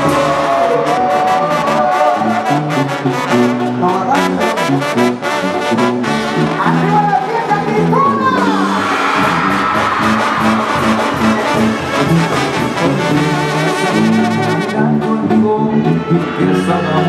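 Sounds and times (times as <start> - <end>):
drum kit: 0.0 - 15.3
brass band playing: 0.0 - 17.0.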